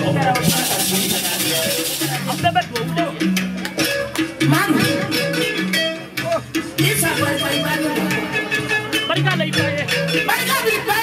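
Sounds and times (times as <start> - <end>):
plucked string instrument melody: 0.0 - 11.0.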